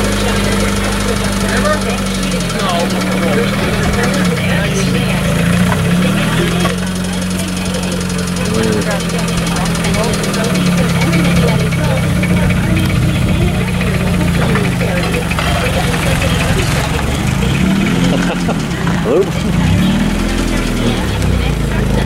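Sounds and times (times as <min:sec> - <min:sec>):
people talking: 0:00.0 - 0:22.0
race car engine idling: 0:00.0 - 0:22.0.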